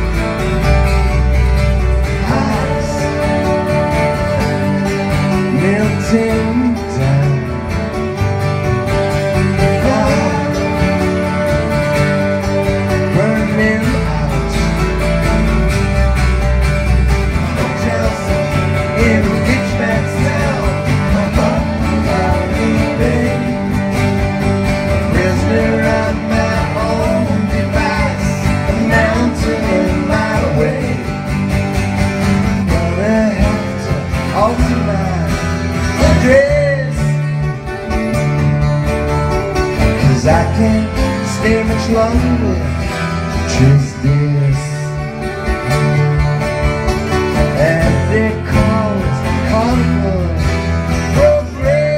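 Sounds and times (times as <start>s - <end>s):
electric bass: 0.0s - 51.9s
strummed acoustic guitars: 0.0s - 51.9s.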